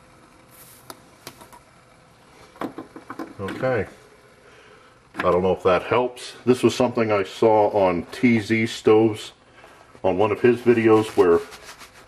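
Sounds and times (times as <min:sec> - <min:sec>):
faint steady hum: 0:00.0 - 0:12.0
short soft hiss: 0:00.4 - 0:01.6.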